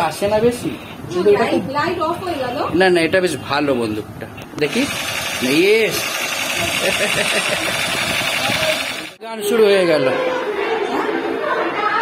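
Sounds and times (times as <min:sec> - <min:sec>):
toy laser gun buzzing: 0:04.7 - 0:09.2.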